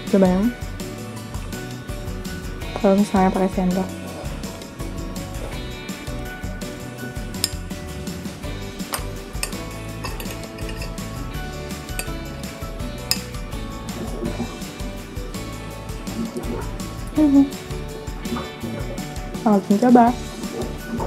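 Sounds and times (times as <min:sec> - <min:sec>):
background music: 0:00.0 - 0:21.0
metal spoon clinking on plate: 0:08.8 - 0:11.0, 0:13.1 - 0:13.4.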